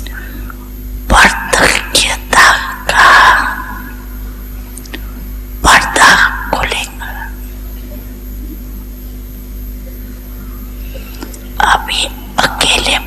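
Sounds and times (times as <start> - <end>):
steady low hum: 0.0 - 13.0
woman speaking softly: 1.1 - 4.0, 5.6 - 8.7, 11.5 - 13.0.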